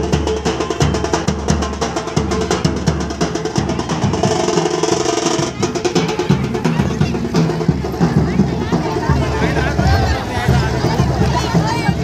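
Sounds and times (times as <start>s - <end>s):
crowd voices: 0.0s - 12.0s
fast procession drumming: 0.0s - 12.0s.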